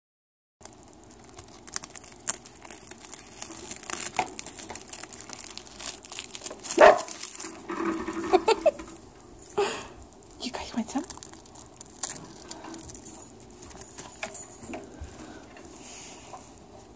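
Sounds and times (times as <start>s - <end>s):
rat nibbling crackling seaweed: 0.6s - 16.9s
seaweed tearing crackle: 0.6s - 16.9s.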